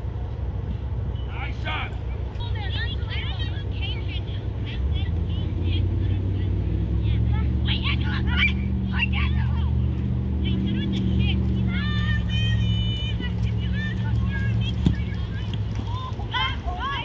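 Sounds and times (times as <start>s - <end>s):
vehicle engine hum: 0.0s - 17.0s
distant children shouting: 10.5s - 17.0s.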